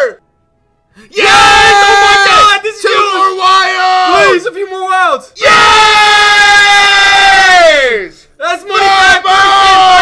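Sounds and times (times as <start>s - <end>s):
man screaming: 1.1s - 4.4s.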